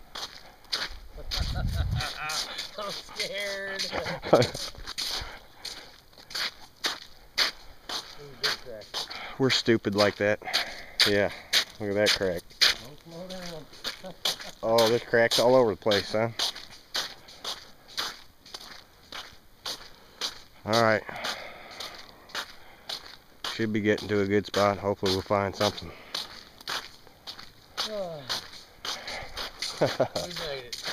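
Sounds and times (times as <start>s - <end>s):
footsteps crunching on ice: 0.0s - 30.9s.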